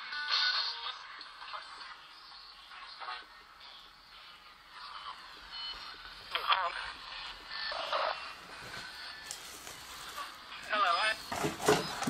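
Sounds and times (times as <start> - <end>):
faint radio-like hiss: 0.0 - 12.0.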